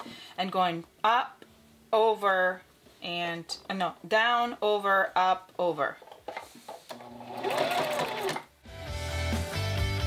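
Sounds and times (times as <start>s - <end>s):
sewing machine stitching: 6.9s - 8.5s
background music: 7.5s - 10.0s.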